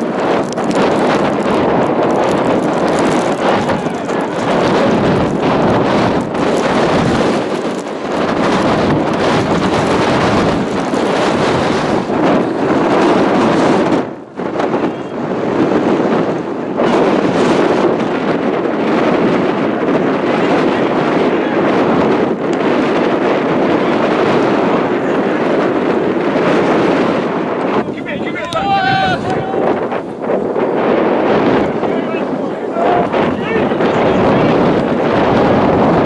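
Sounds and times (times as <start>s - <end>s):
wind buffeting microphone: 0.0s - 36.0s.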